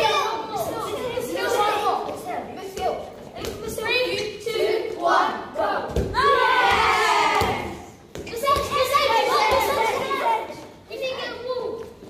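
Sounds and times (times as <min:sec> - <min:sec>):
children shouting: 0:05.0 - 0:11.6.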